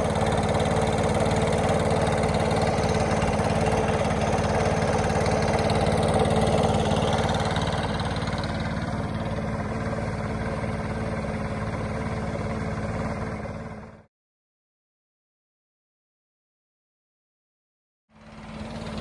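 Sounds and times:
engine idling: 0.0 - 14.1, 18.1 - 19.0.

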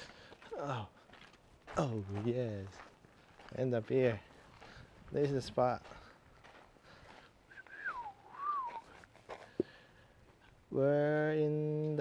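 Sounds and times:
person whistling: 7.5 - 9.0.

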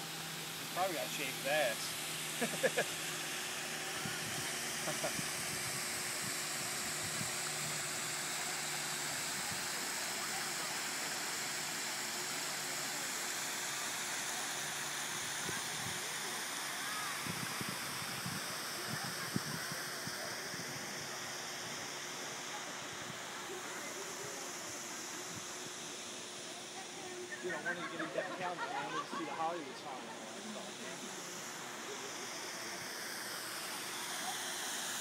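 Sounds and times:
waterfall pouring into pool: 0.0 - 20.9.

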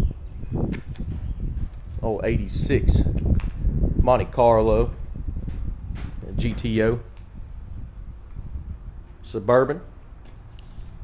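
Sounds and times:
wind rumble on microphone: 0.0 - 11.0
footsteps on pavement: 10.1 - 11.0.

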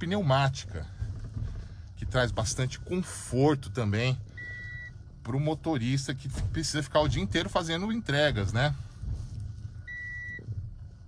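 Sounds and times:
high electronic beep: 4.3 - 4.9, 9.9 - 10.4.

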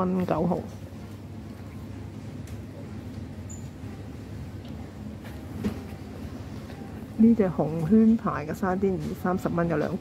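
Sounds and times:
supermarket background hum: 0.0 - 10.0.

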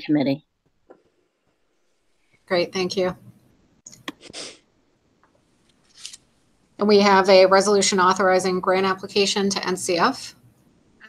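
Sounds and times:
woman speaking: 0.0 - 0.4, 2.5 - 3.2, 6.8 - 10.4.

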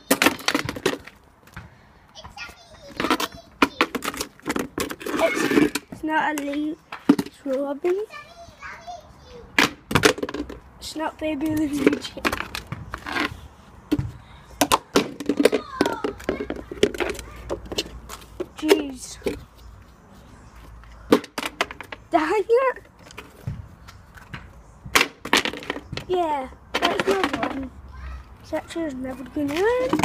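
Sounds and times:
hard object clattering on concrete: 0.0 - 8.2, 9.6 - 10.7, 11.4 - 19.6, 21.1 - 23.6, 24.2 - 27.7, 29.1 - 30.0
child's voice: 2.1 - 4.0, 5.1 - 6.8, 7.4 - 9.6, 15.4 - 17.6, 26.0 - 30.0.

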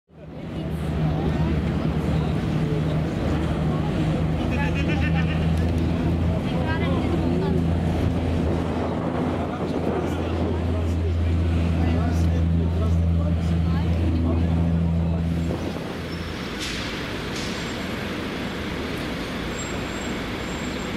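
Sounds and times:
faint voices: 0.1 - 18.3
boat engine droning: 0.2 - 20.9.

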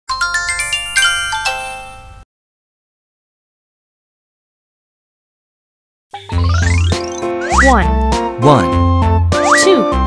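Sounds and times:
bell-like chime jingle: 0.1 - 2.2.

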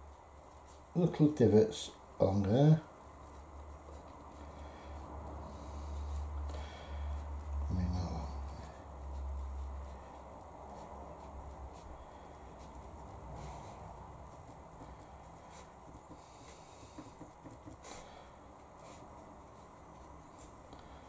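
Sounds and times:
low background hum: 0.0 - 21.0
brush tapping on paper: 14.3 - 20.5.

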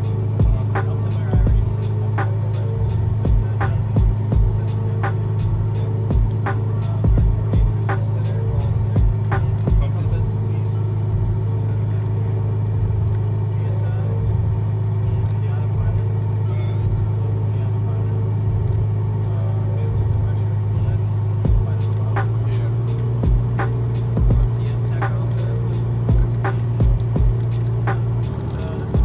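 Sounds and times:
airplane engine and propeller drone: 0.0 - 29.0.

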